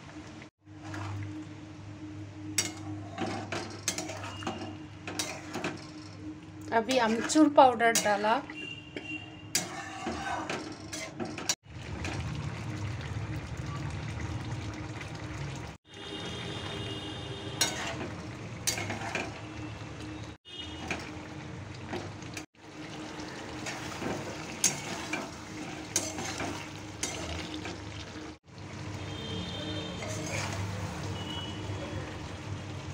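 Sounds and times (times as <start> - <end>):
metal spatula scraping pan: 2.6 - 11.6, 17.5 - 19.4, 23.6 - 27.8, 29.8 - 31.0
curry bubbling and sizzling: 2.6 - 32.9.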